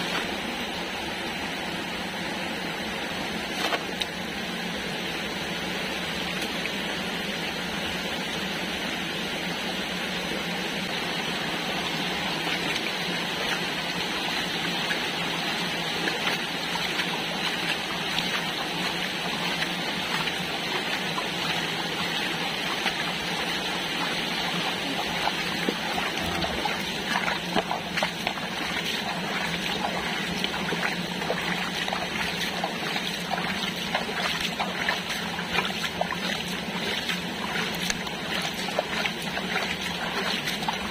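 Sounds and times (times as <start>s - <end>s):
running water rushing: 0.0s - 40.9s.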